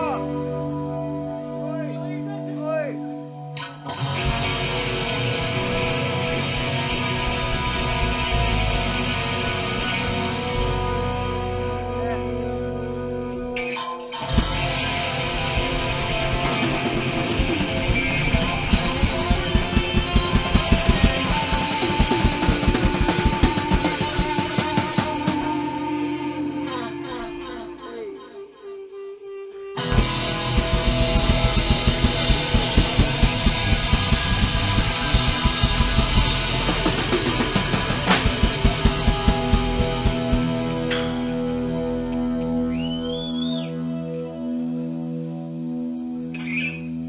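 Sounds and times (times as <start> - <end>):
electric guitar: 0.0 - 47.0
rock band playing: 0.0 - 47.0
pounding drum kit: 14.3 - 25.9, 29.8 - 42.0.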